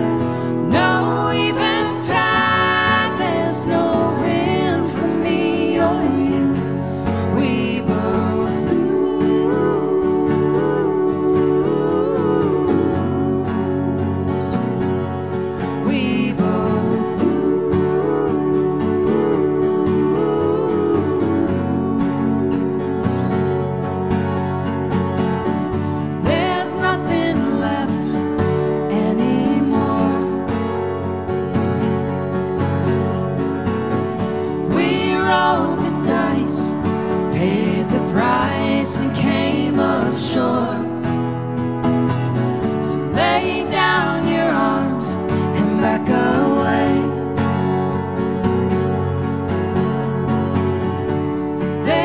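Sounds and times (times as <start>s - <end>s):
person singing: 0.0s - 23.8s, 26.2s - 30.9s, 34.4s - 41.2s, 42.8s - 47.6s
acoustic guitars playing: 0.0s - 52.0s.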